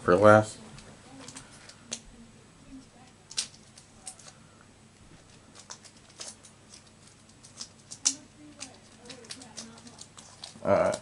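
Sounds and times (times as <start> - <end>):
foil pack crinkling: 5.1 - 11.0.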